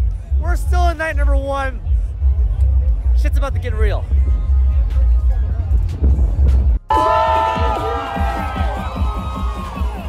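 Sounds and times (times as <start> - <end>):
crowd noise: 0.0 - 10.0
heavy bass beat: 0.0 - 10.0
electronic dance music: 4.2 - 10.0.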